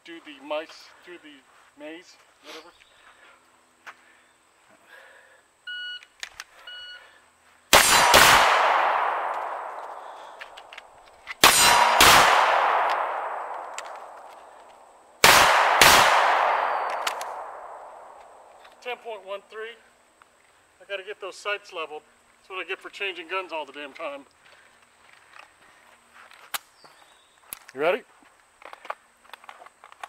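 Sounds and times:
pistol gunshots with echo: 7.7 - 10.6, 11.4 - 14.6, 15.2 - 18.6.

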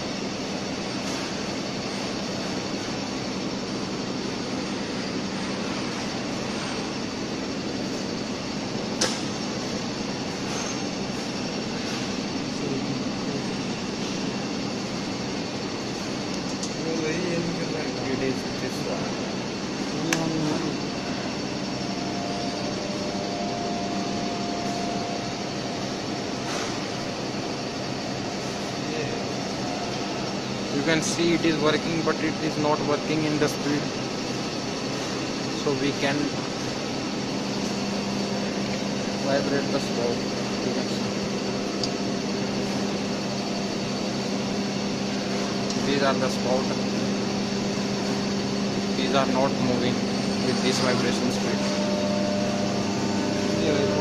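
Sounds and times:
machinery humming: 0.0 - 54.0.

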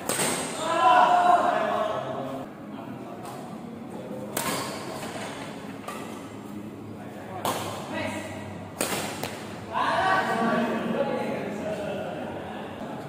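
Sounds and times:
badminton racket hitting shuttlecock: 0.0 - 0.6, 8.8 - 9.5
voices: 0.0 - 13.0.

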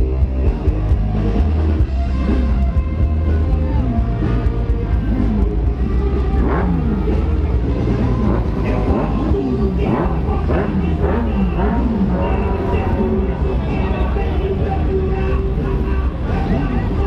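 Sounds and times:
faint voices: 0.0 - 17.0
low engine rumble: 0.0 - 17.0
motorcycle engines revving: 0.0 - 17.0.

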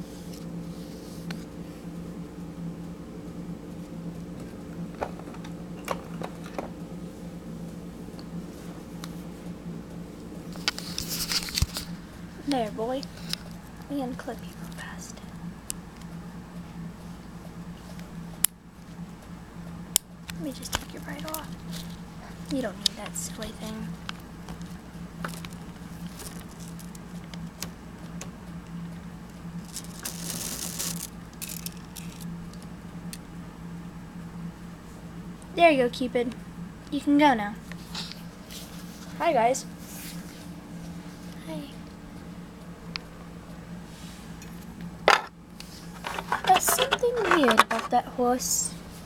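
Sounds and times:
steady low hum: 0.0 - 49.0
rustling scrape: 10.6 - 12.0, 29.6 - 32.2, 37.8 - 39.2, 39.8 - 41.3, 43.8 - 44.4, 45.6 - 48.0
plastic toys clicking and clattering: 29.7 - 32.2, 46.0 - 48.0.

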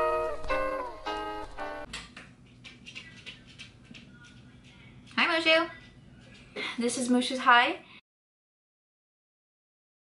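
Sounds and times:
small pet pattering: 2.4 - 6.6.

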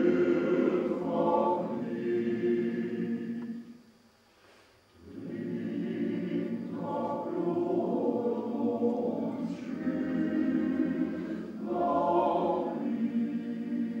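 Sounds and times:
male voice choir singing: 0.0 - 3.6, 5.0 - 14.0.

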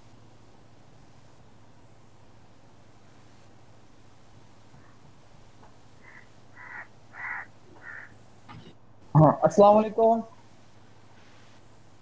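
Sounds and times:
bird's harsh call: 6.0 - 8.2.

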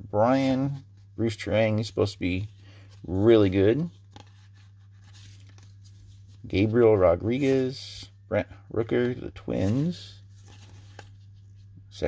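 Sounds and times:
rustle of cards being handled: 0.2 - 8.1, 8.8 - 12.0.

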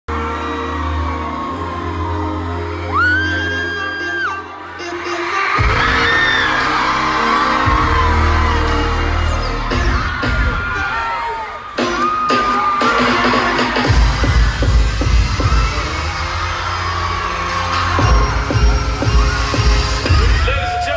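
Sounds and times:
crowd whooping and screaming: 0.1 - 20.9
pop music over loudspeakers: 0.1 - 20.9.

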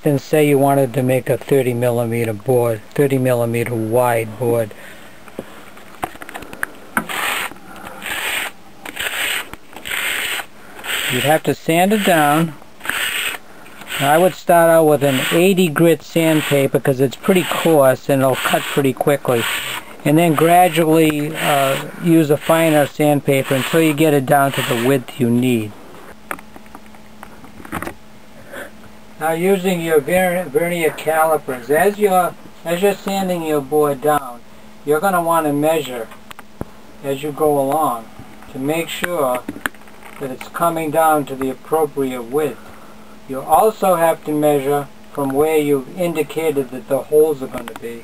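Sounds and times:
faint steady hum: 0.0 - 48.0
scratchy ticks: 6.3 - 14.3
wood sanding on sandpaper: 7.0 - 25.1.

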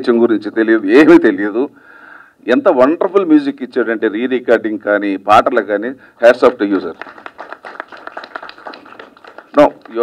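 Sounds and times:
scattered hand clapping: 6.4 - 10.0.

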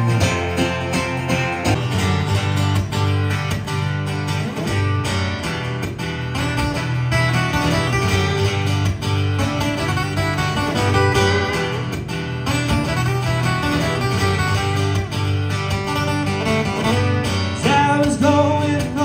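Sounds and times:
live guitar music: 0.0 - 19.0.

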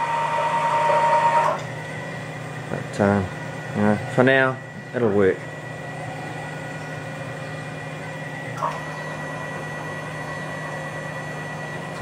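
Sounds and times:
stepper motors humming and whining: 0.0 - 12.0.

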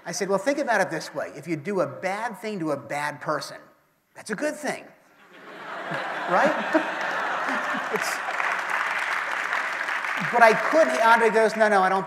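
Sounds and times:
people laughing: 5.2 - 9.2, 10.2 - 11.4
audience clapping: 5.8 - 12.0.

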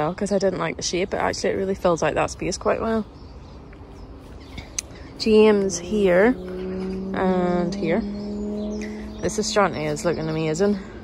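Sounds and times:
low outdoor rumble: 0.0 - 11.0
bird chirps: 2.4 - 11.0.

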